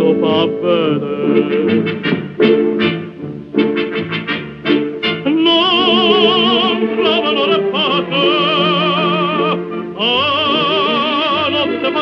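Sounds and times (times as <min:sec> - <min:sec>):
orchestra playing short chords: 0:00.0 - 0:12.0
tenor singing: 0:00.0 - 0:12.0.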